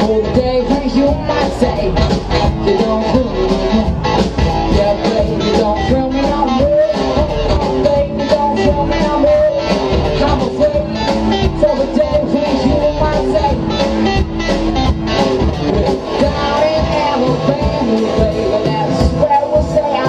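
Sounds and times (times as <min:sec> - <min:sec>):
rock band playing: 0:00.0 - 0:20.0.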